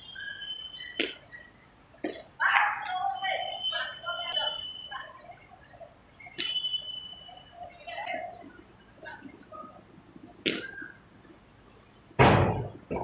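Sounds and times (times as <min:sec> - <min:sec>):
faint voices calling: 0:00.0 - 0:12.1.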